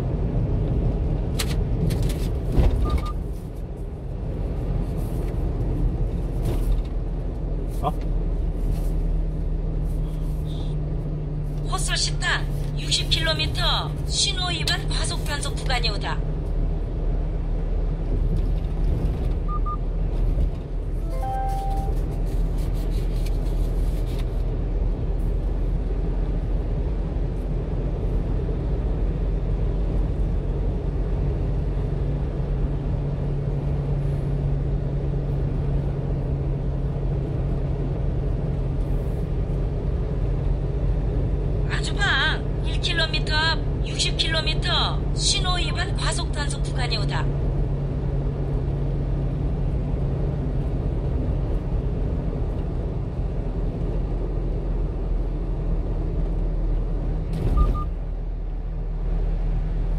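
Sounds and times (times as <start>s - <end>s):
truck engine and road drone: 0.0s - 59.9s
short electronic beeps: 19.5s - 19.8s, 21.0s - 22.0s, 57.5s - 58.0s.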